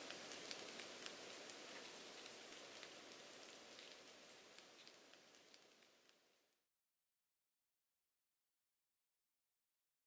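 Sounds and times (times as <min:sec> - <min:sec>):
rain patter: 0:00.0 - 0:06.7.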